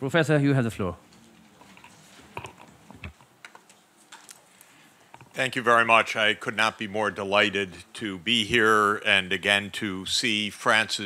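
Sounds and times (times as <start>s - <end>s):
faint clicks and taps: 1.1s - 5.4s.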